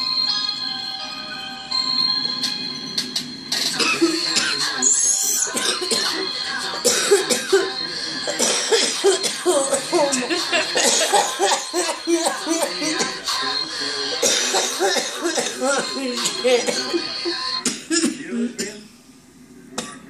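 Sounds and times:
woman coughing hard: 3.8s - 4.6s, 5.6s - 6.2s, 6.8s - 7.7s, 8.3s - 13.2s, 14.2s - 17.0s.

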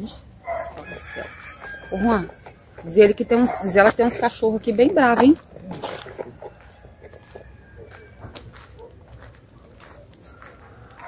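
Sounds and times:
faint dog barks: 0.4s - 0.9s, 3.4s - 4.0s, 8.6s - 11.0s.

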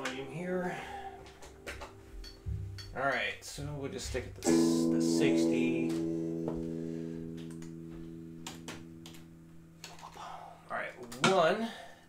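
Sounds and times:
electric guitar chord ringing: 0.0s - 3.8s, 4.4s - 10.7s.

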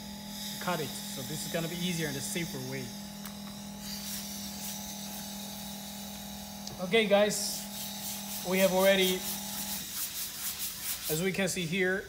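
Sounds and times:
freezer humming: 0.0s - 9.9s.

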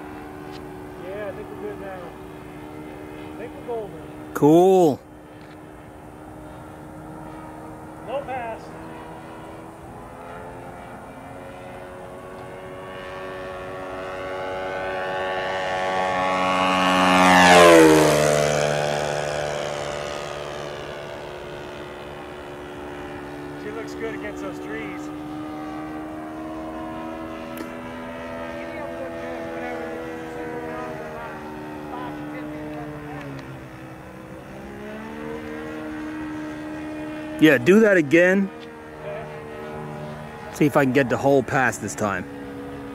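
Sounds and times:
model airplane engine flying by: 0.0s - 42.9s.

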